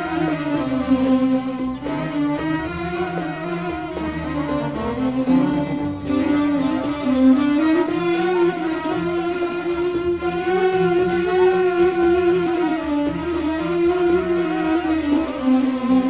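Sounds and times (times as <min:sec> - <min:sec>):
bowed string melody: 0:00.0 - 0:16.0
low sustained accompaniment: 0:00.0 - 0:16.0.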